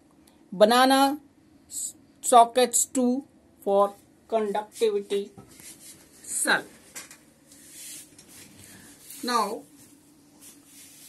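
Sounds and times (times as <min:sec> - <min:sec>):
rubbing and rustling handling noise: 0:03.9 - 0:11.0
soft hiss: 0:07.5 - 0:11.0.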